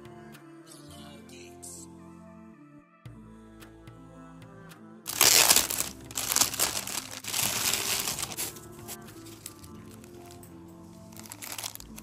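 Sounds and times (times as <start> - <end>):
plastic bag crinkling: 5.1 - 8.6, 11.2 - 12.0.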